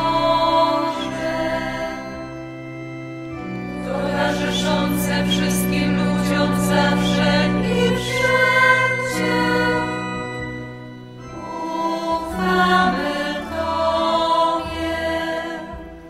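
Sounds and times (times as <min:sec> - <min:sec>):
choir singing a hymn: 0:00.0 - 0:16.0
low accompaniment: 0:00.0 - 0:16.0.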